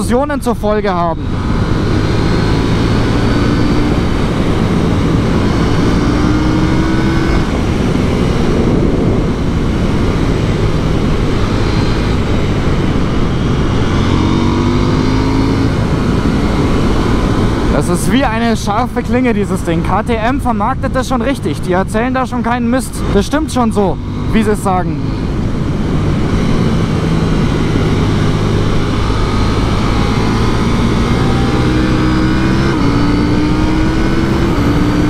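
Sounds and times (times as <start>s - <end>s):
motorcycle engine accelerating: 0.0s - 35.0s
wind rush on microphone: 0.0s - 35.0s.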